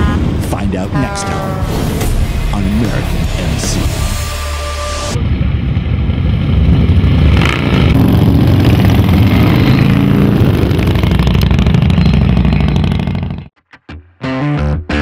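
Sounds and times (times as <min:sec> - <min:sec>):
motorcycle engines revving: 0:05.2 - 0:13.5.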